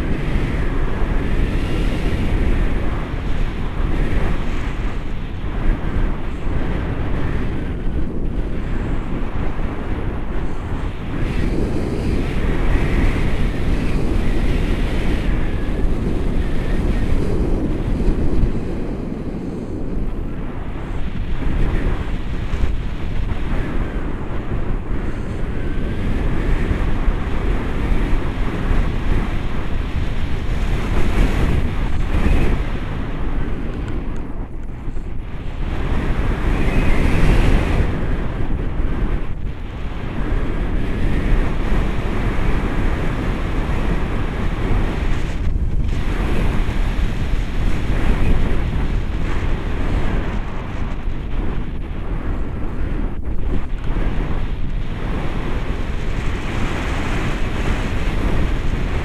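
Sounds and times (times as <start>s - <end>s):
wind buffeting microphone: 0.0s - 59.0s.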